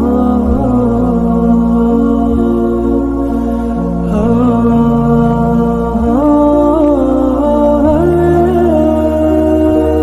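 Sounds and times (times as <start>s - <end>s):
long held drone tones: 0.0s - 10.0s
slow chant-like melody: 0.0s - 10.0s.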